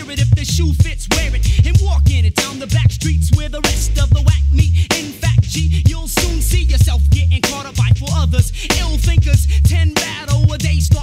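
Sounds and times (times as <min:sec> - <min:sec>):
deep bass line: 0:00.0 - 0:11.0
rapping over a beat: 0:00.0 - 0:11.0.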